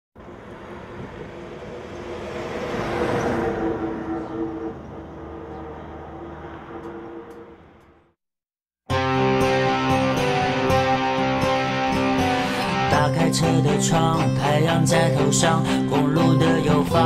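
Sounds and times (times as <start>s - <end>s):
passing vehicle rumble: 0.2s - 8.2s.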